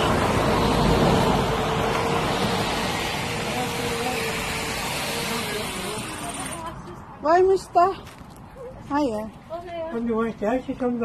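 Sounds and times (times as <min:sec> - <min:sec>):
engine humming: 0:00.0 - 0:06.8.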